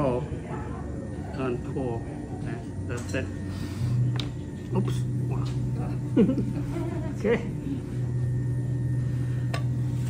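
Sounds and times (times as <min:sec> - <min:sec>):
pottery wheel motor humming: 0:00.0 - 0:10.0.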